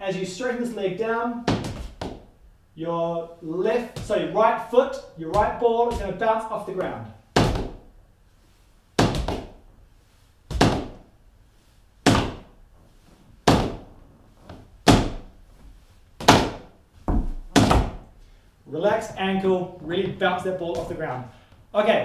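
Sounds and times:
tap shoes brushing hardwood floor: 3.9s - 4.2s, 5.3s - 18.0s, 19.8s - 21.3s.

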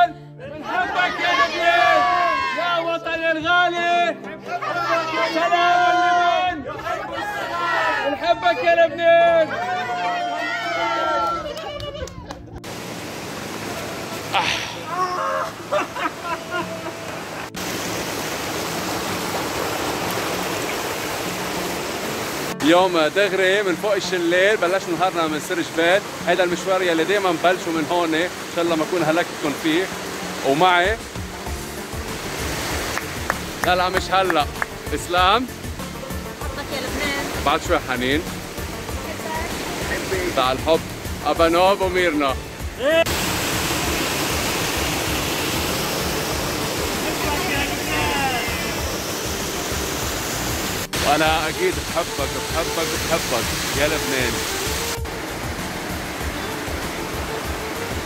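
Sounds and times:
stream water over rocks: 12.6s - 58.0s.

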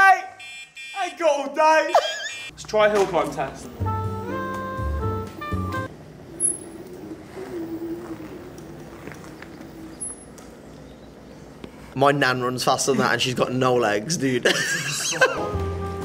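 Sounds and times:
short tune of held notes: 3.8s - 5.9s
scooter engine labouring: 4.7s - 10.8s.

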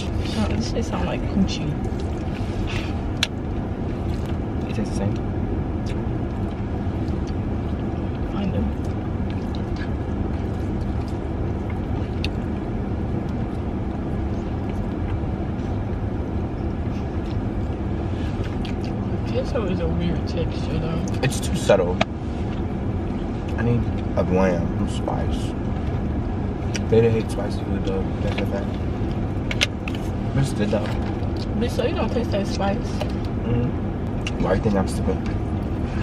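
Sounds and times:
car engine idling: 0.0s - 36.0s.

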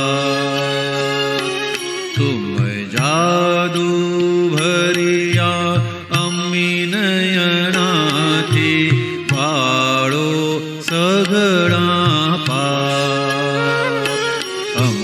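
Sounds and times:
devotional song: 0.0s - 15.0s.

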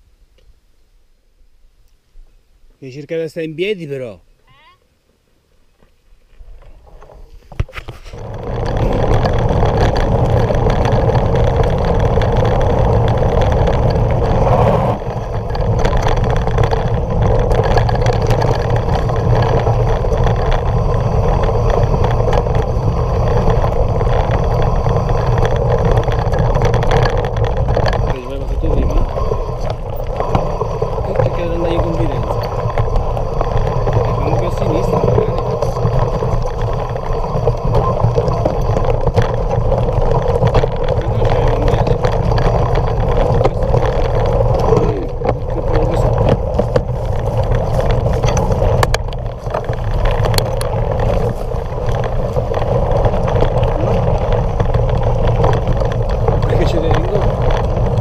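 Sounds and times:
tyre rumble on gravel: 6.3s - 58.0s
wind rush: 7.5s - 58.0s.

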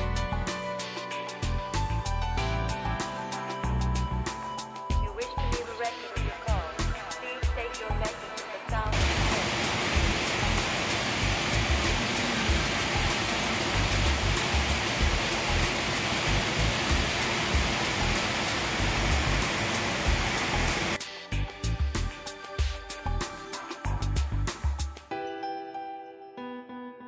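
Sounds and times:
background music with beat: 0.0s - 26.0s
waterfall rushing: 9.0s - 21.0s.

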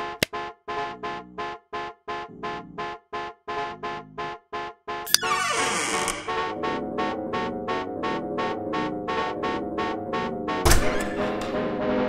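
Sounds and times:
electronic music with pulsing chords: 0.0s - 5.3s, 6.1s - 12.0s.

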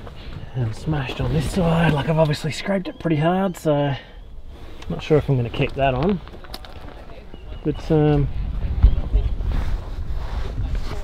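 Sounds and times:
wind buffeting microphone: 4.2s - 11.0s.

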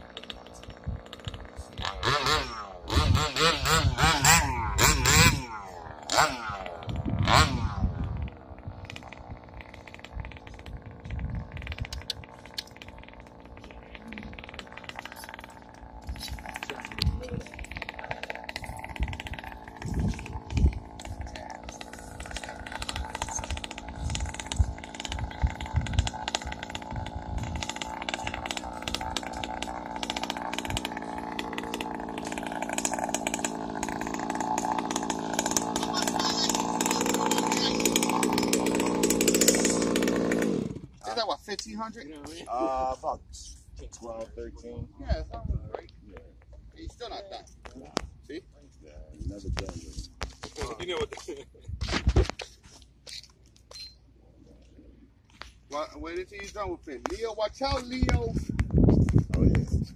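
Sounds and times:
small two-stroke engine idling: 0.0s - 43.1s.

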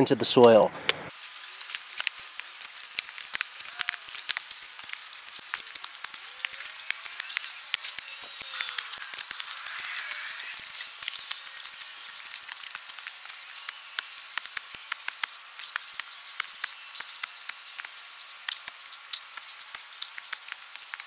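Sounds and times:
dry soil crackling: 1.1s - 21.0s
sharp clicks: 1.7s - 21.0s.

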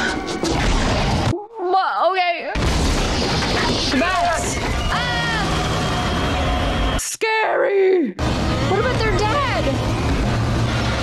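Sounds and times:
loud rumbling din: 2.6s - 7.0s, 8.2s - 11.0s
voices crying out: 3.9s - 8.0s.

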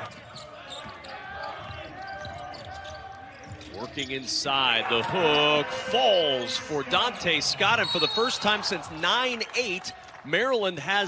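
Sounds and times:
sneakers squeaking: 0.0s - 4.7s
players' voices: 0.0s - 11.0s.

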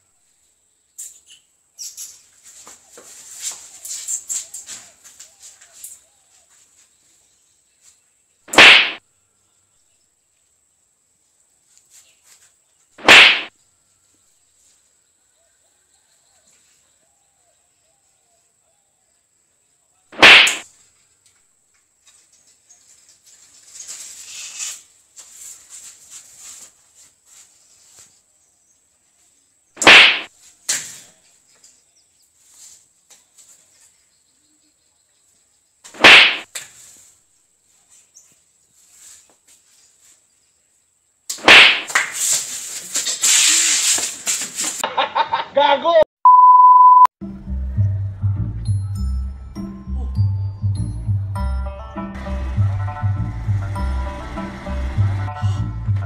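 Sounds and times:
noisy scuffle: 2.0s - 7.2s, 22.0s - 28.3s, 36.0s - 40.3s, 41.5s - 44.8s
hand slaps on bodies: 8.5s - 9.0s, 13.0s - 13.5s, 20.2s - 20.6s, 29.8s - 31.0s, 35.9s - 36.8s, 41.3s - 42.2s.

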